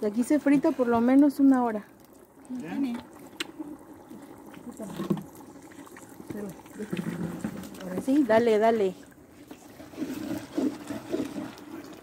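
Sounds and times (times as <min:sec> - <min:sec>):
paddle stirring frying paste: 0:02.8 - 0:12.0.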